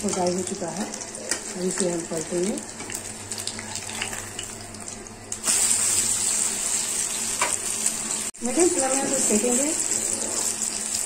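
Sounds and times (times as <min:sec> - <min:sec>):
ghee sizzling in frying pan: 0:00.0 - 0:11.0.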